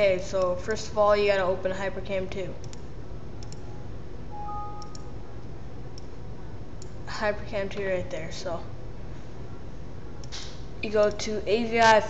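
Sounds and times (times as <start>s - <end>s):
two-note electronic alert chime: 4.3s - 5.0s
mouse clicks: 4.8s - 5.1s.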